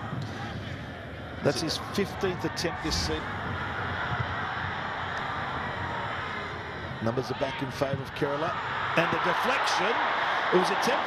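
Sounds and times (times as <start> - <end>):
football stadium crowd noise: 0.0 - 11.0.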